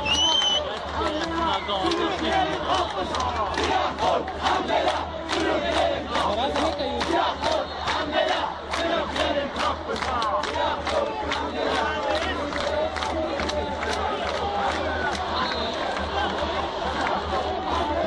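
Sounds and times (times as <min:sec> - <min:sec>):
crowd shouting: 0:00.0 - 0:18.0
handclaps: 0:00.1 - 0:17.2.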